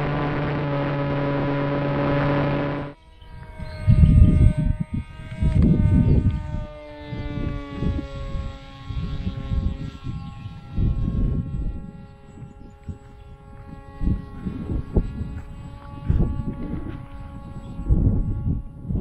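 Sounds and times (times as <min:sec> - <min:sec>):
electric motor and propeller buzz: 0:00.0 - 0:19.0
wind gusts on microphone: 0:00.0 - 0:19.0.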